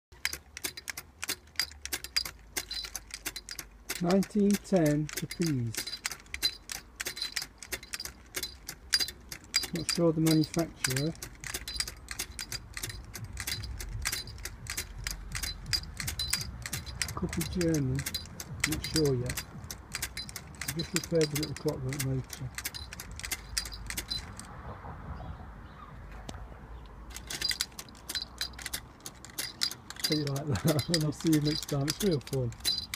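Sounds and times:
clockwork toy clicking: 0:00.1 - 0:24.5, 0:27.1 - 0:32.9.

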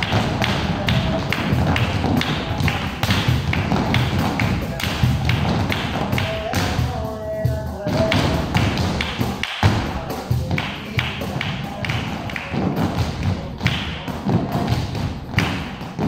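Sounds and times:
dance shoes tapping on floor: 0:00.0 - 0:16.0.

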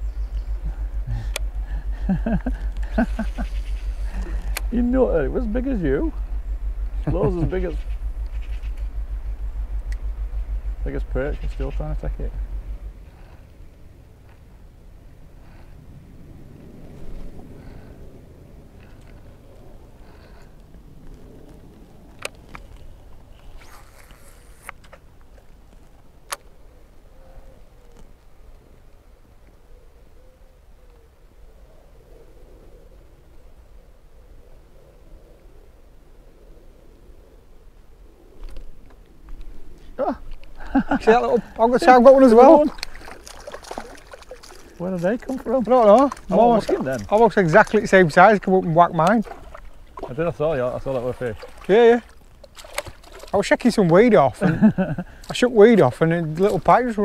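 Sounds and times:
electric trolling motor throbbing: 0:00.0 - 0:14.3
boat engine rumble: 0:00.0 - 0:34.7, 0:35.4 - 0:57.0
fishing rods and reels clicking: 0:02.4 - 0:04.9, 0:21.0 - 0:26.6, 0:41.5 - 0:50.1, 0:51.0 - 0:54.1.

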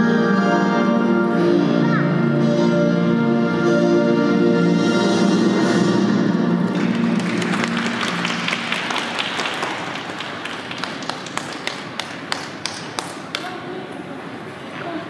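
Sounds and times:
spectators clapping: 0:06.7 - 0:13.6.

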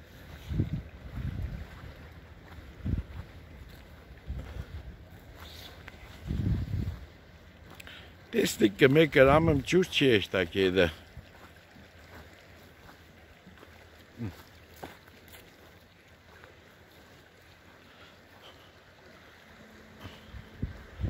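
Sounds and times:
wind rumble on microphone: 0:00.0 - 0:07.3, 0:20.0 - 0:21.0.

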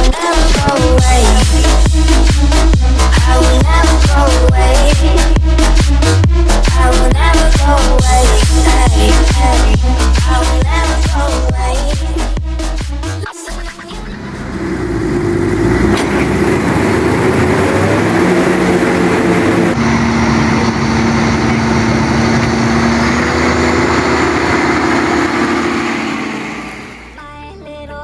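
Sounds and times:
tractor engine running: 0:13.9 - 0:27.9
combine harvester running: 0:14.0 - 0:27.2.

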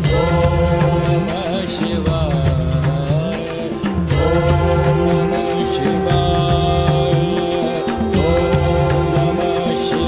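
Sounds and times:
man singing devotional hymn: 0:00.0 - 0:10.0
steady accompaniment: 0:00.0 - 0:10.0.

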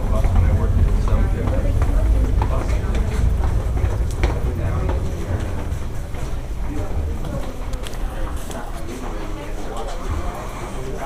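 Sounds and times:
footsteps on stairs: 0:00.0 - 0:10.0
scattered voices: 0:00.0 - 0:11.0
steady low rumble: 0:00.0 - 0:11.0.

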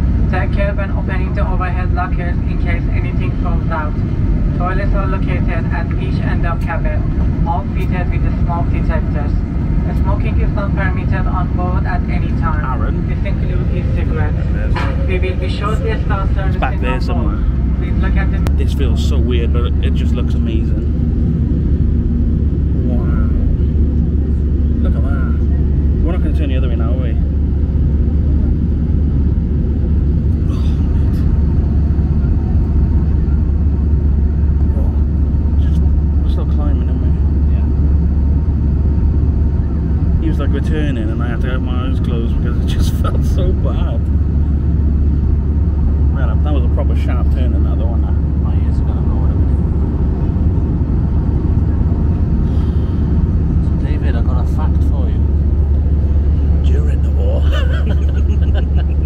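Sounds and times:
airliner cabin rumble: 0:00.0 - 0:59.0
indistinct passenger voices: 0:00.0 - 0:59.0.

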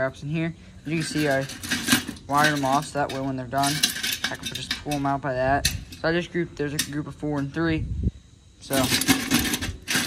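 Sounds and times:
metal traps and chains clinking: 0:00.8 - 0:07.6, 0:08.7 - 0:10.0.

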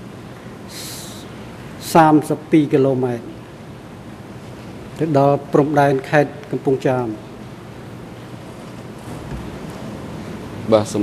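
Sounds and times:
microphone background hiss: 0:00.0 - 0:11.0.

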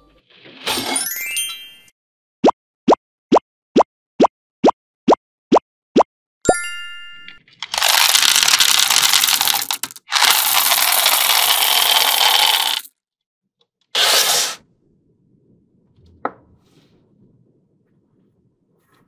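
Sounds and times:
chime: 0:06.5 - 0:07.5
candies rattling poured from cup: 0:07.6 - 0:12.9.

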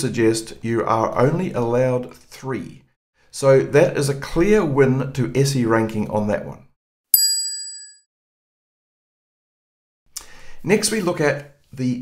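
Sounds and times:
bright ding: 0:07.2 - 0:08.0.

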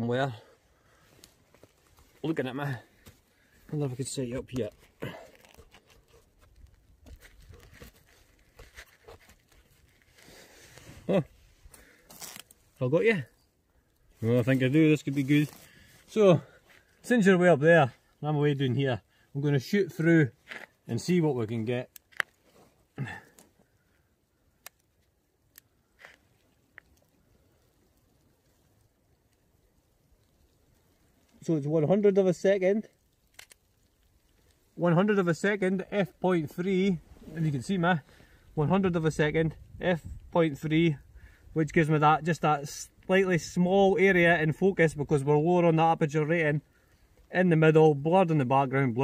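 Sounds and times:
jacket fabric rubbing: 0:08.6 - 0:12.6
camera handling: 0:21.9 - 0:22.4, 0:33.2 - 0:33.7
faint sharp camera clicks: 0:33.3 - 0:33.6.

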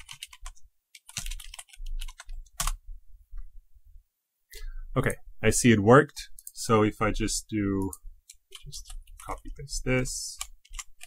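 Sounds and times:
keyboard typing: 0:00.0 - 0:02.8, 0:07.8 - 0:09.6, 0:10.4 - 0:11.0.

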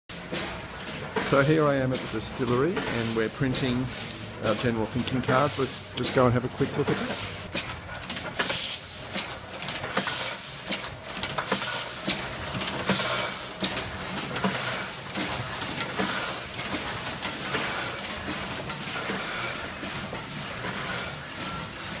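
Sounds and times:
continuous mechanical whir: 0:00.1 - 0:22.0
printing press clacking: 0:00.1 - 0:22.0.

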